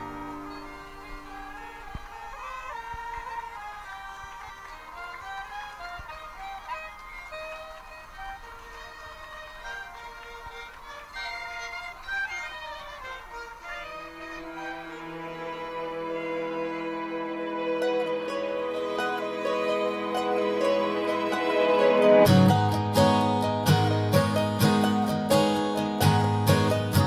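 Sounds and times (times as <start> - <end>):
bagpipes: 0.0 - 27.0
clarinets: 0.0 - 27.0
fiddles: 0.0 - 27.0.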